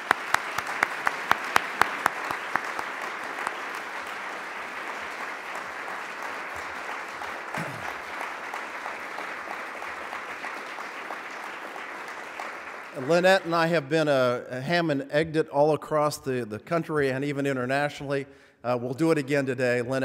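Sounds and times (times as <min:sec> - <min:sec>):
person clapping close to microphone: 0:00.0 - 0:13.6
audience applauding: 0:00.0 - 0:14.0.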